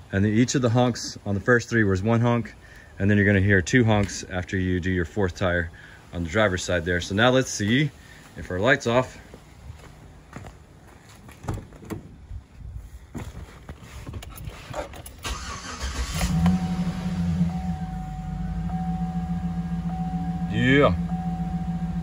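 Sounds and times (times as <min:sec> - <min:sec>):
truck engine starting and idling: 0:15.0 - 0:22.0.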